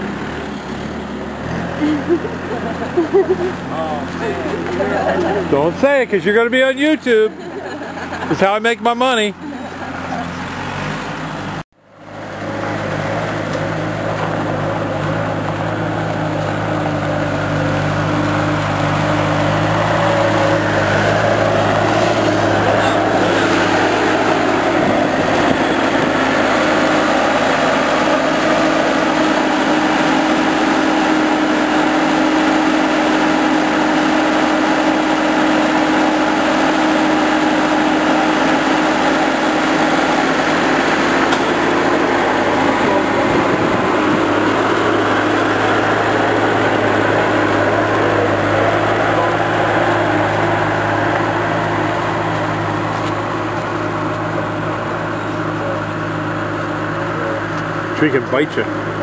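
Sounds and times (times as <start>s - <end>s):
loader engine running: 0.0s - 59.0s.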